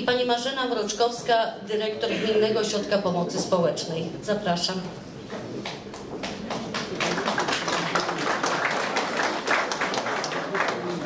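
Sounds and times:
audience applauding: 0:05.9 - 0:11.0.

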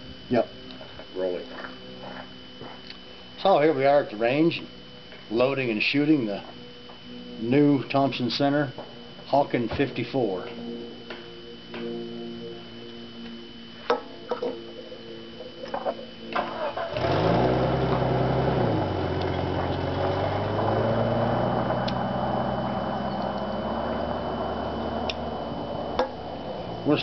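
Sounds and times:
engine starting and running: 0:15.7 - 0:27.0.

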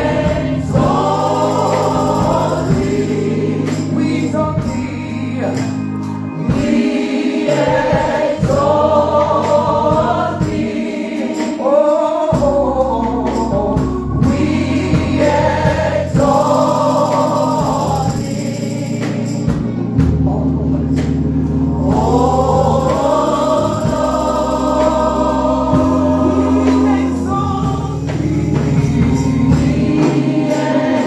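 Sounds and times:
gospel group singing in harmony: 0:00.0 - 0:31.0
instrumental backing with steady beat: 0:00.0 - 0:31.0.

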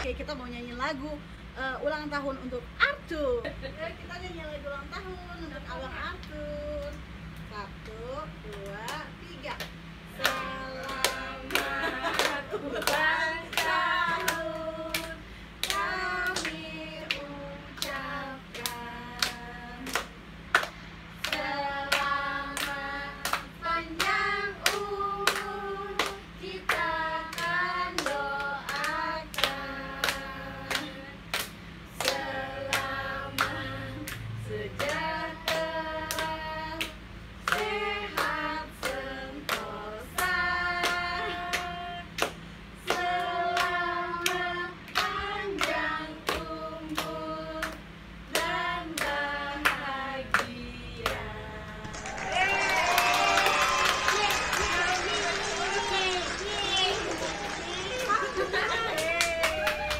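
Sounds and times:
family singing a celebration song: 0:04.1 - 0:59.9
people clapping along: 0:08.5 - 0:59.9.

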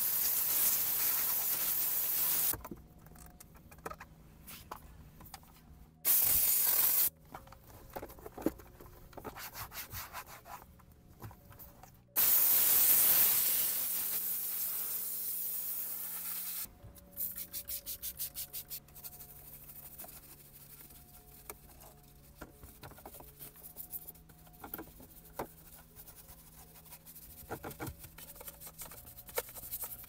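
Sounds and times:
steam cleaner hissing: 0:00.0 - 0:02.5, 0:06.1 - 0:07.1, 0:12.2 - 0:16.7.

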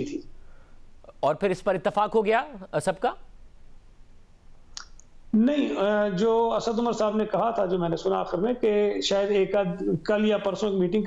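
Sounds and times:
man speaking: 0:00.0 - 0:00.3, 0:01.0 - 0:03.3, 0:05.3 - 0:11.0
faint background hiss: 0:00.0 - 0:11.0.

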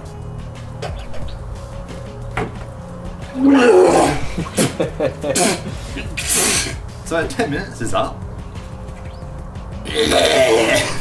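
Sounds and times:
man roaring yell: 0:03.4 - 0:04.3, 0:09.9 - 0:11.0.

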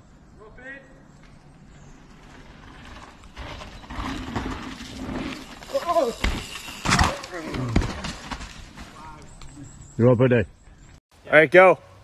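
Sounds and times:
tyres on dirt trail: 0:00.0 - 0:12.0.

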